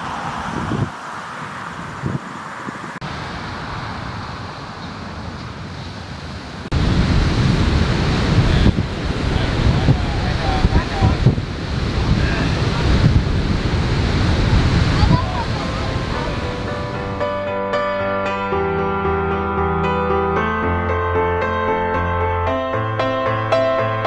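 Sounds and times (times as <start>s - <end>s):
gusty wind on microphone: 0.0s - 4.8s, 5.4s - 17.3s
breaking surf: 0.0s - 17.8s.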